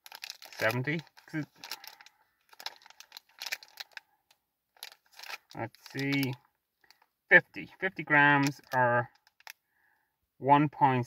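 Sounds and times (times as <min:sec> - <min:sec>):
plastic wrapper crinkling: 0:00.0 - 0:07.1, 0:08.0 - 0:09.6.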